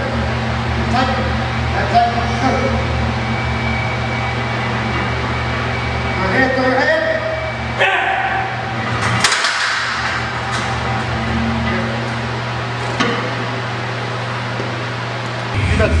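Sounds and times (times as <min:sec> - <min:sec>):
steady low hum: 0:00.0 - 0:16.0
barbell plates clanking: 0:08.8 - 0:12.2.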